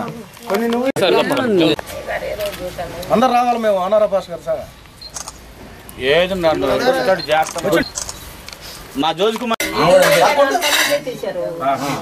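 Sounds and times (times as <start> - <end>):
people talking: 9.0 - 12.0
steel pot and plates clinking: 9.6 - 11.2.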